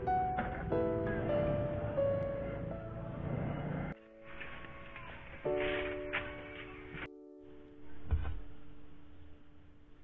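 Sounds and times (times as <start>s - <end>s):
soft music with held notes: 0.0s - 10.0s.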